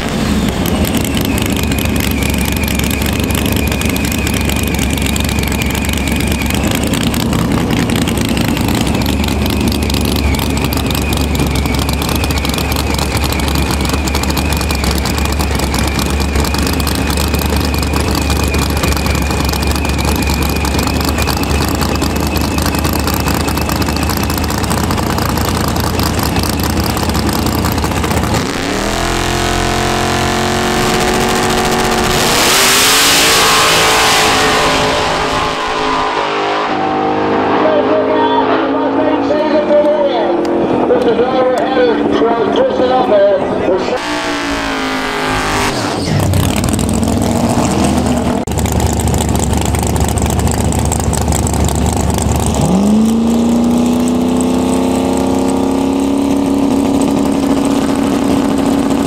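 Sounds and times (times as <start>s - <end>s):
engine revving at launch: 0.0s - 4.8s, 27.8s - 39.5s, 43.8s - 48.5s, 52.3s - 59.0s
drag car engines droning: 0.0s - 59.0s
high engine whine: 0.0s - 59.0s.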